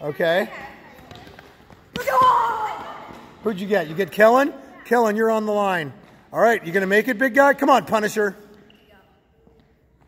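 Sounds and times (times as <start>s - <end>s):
sneakers thudding on gym floor: 0.9s - 3.5s.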